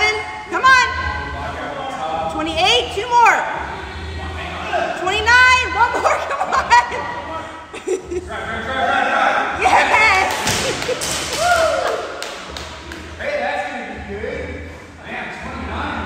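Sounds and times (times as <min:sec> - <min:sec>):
voices: 0:00.0 - 0:16.0.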